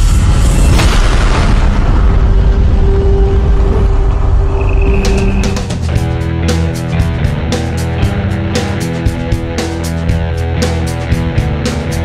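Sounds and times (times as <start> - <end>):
deep rumbling boom: 0.0 - 7.3
dramatic music: 0.0 - 12.0.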